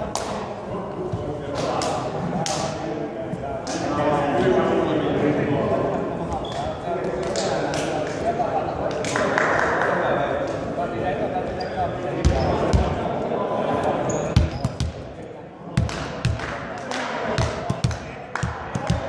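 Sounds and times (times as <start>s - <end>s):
murmur of voices in hall: 0.0s - 19.0s
ball bouncing on floor: 12.2s - 12.9s.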